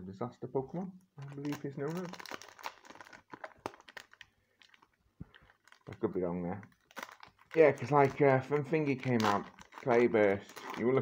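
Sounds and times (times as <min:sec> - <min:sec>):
wrapper crinkling: 0:01.2 - 0:11.0.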